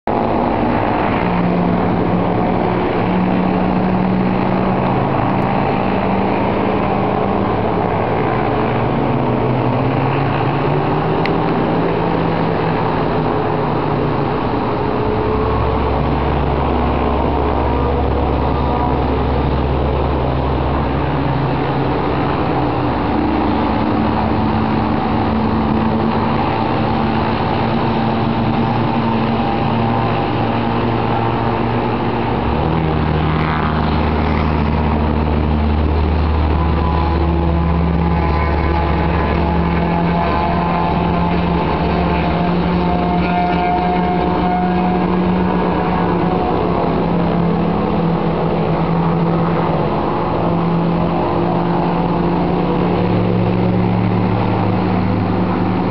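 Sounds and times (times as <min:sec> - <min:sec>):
propeller aircraft engines droning: 0:00.0 - 0:55.9.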